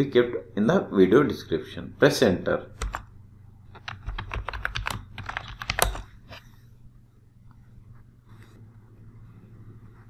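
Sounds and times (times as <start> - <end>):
keyboard typing: 2.8 - 3.1, 3.7 - 6.1.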